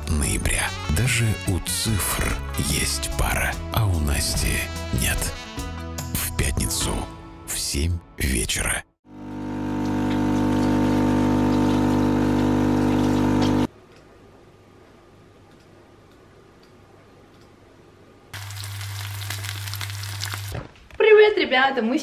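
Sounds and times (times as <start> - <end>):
coffee machine humming and hissing: 9.1 - 13.7.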